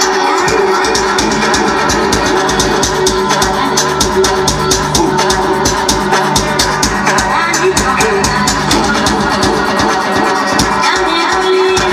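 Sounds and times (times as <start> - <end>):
loud dance music: 0.0 - 11.9.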